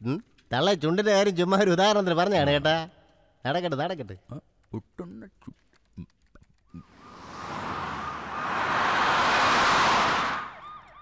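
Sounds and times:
rush of noise: 0:06.9 - 0:10.6.

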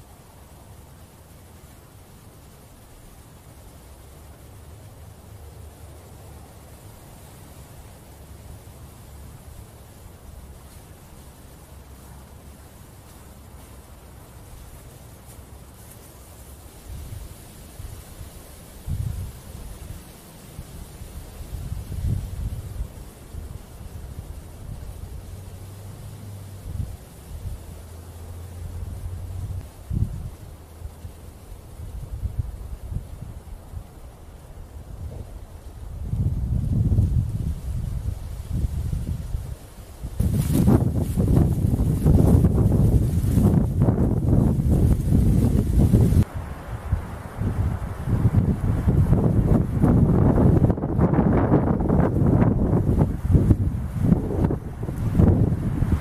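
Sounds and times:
leaves rustling: 0:00.0 - 0:56.0
wind gusting across microphone: 0:00.0 - 0:56.0.

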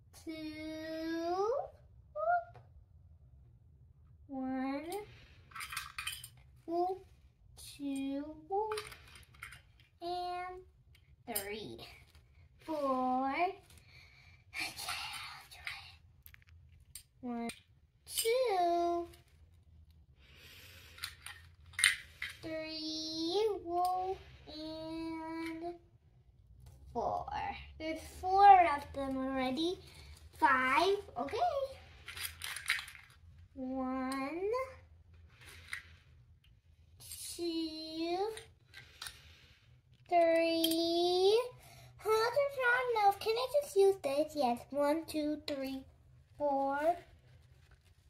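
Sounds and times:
plastic toy pieces clattering: 0:05.5 - 0:06.4, 0:08.7 - 0:09.9, 0:20.8 - 0:22.4, 0:32.0 - 0:33.2
plastic toy pieces clicking: 0:21.0 - 0:22.4, 0:32.1 - 0:33.2.

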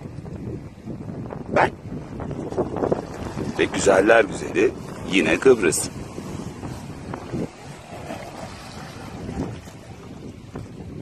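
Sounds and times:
wind buffeting microphone: 0:00.0 - 0:11.0
waves washing against rocks: 0:01.6 - 0:11.0.

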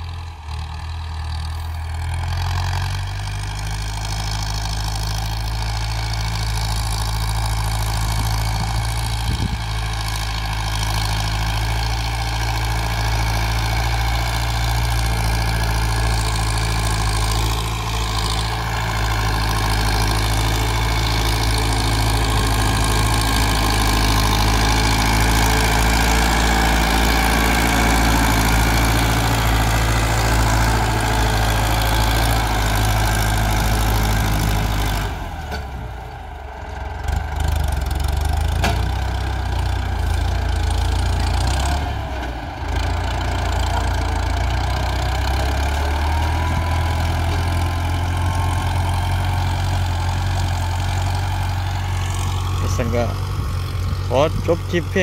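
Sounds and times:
tractor diesel engine under load: 0:00.0 - 0:55.0.

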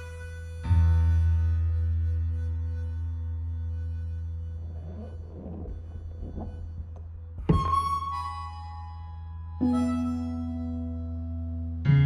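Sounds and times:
deep steady low tone: 0:03.4 - 0:08.1
faint soft irregular noises: 0:04.0 - 0:08.1.

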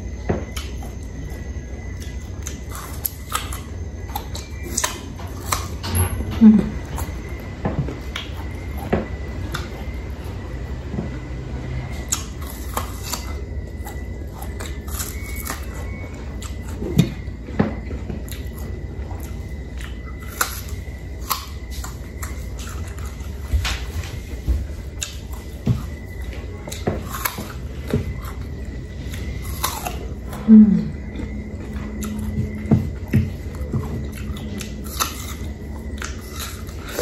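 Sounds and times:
steady low hum: 0:00.0 - 0:37.0
person chewing and biting: 0:00.4 - 0:05.8, 0:12.0 - 0:37.0.

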